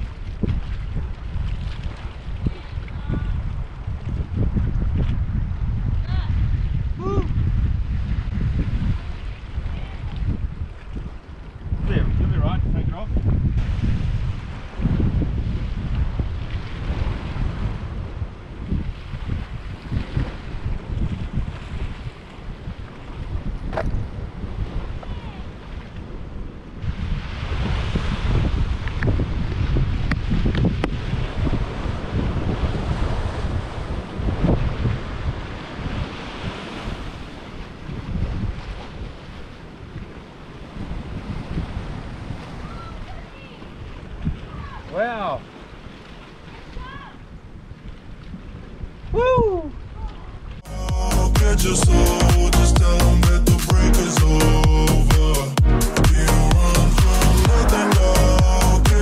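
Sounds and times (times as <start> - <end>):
wind buffeting microphone: 0.0 - 50.7
sea surf breaking on rocks: 11.7 - 23.4, 24.0 - 47.3.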